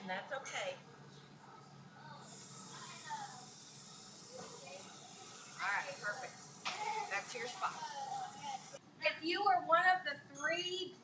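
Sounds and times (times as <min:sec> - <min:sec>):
hose spray nozzle hissing: 0:02.3 - 0:08.8.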